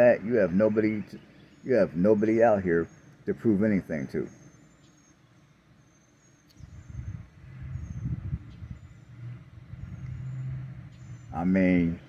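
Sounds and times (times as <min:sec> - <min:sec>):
motor vehicle rumble: 0:06.2 - 0:12.0.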